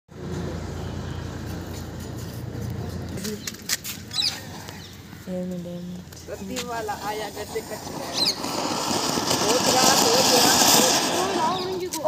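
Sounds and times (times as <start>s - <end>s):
firecracker hissing bursts: 6.8s - 12.0s.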